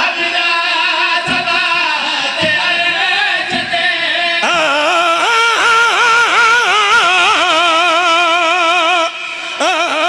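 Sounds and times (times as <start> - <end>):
person singing through a microphone: 0.0 - 10.0.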